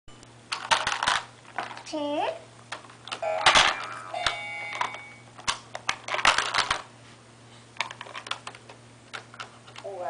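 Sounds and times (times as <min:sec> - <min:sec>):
plastic toy pieces clattering: 0:00.5 - 0:01.9, 0:02.7 - 0:06.8, 0:07.8 - 0:08.6.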